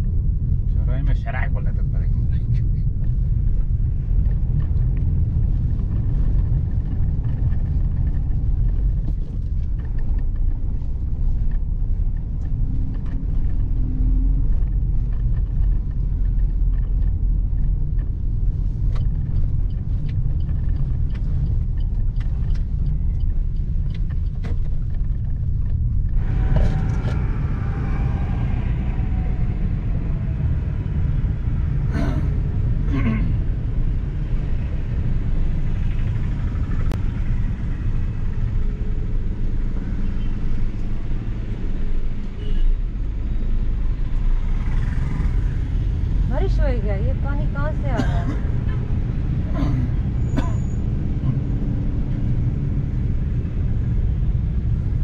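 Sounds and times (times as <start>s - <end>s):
car engine and tyres rumbling: 0.0s - 55.0s
street traffic: 0.0s - 55.0s.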